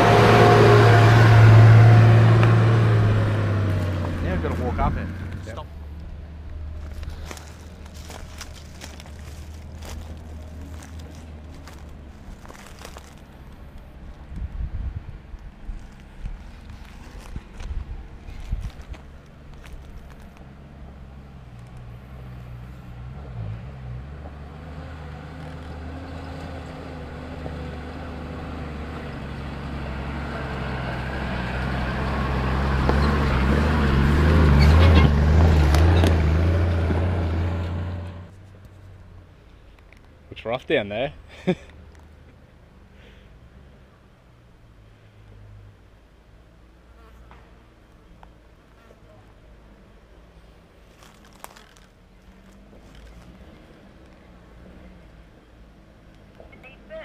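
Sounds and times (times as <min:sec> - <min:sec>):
vehicle engine labouring: 0:00.0 - 0:44.3.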